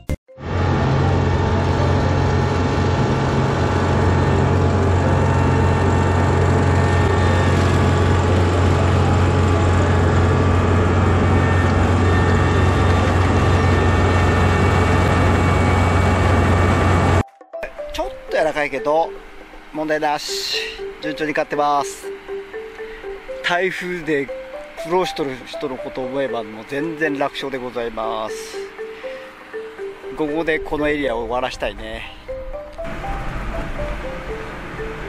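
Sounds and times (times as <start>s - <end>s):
combine harvester diesel drone: 0.4s - 17.2s, 18.3s - 35.0s.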